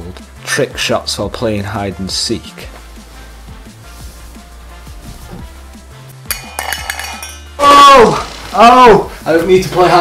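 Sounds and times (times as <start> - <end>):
quiet background music: 0.0 - 10.0
object rattling in metal mug: 6.3 - 7.4.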